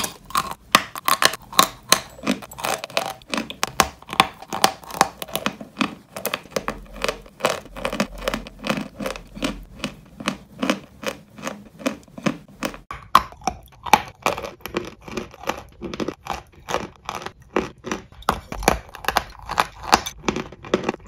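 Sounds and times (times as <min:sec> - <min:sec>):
crunchy dessert being chewed: 0:00.0 - 0:21.0.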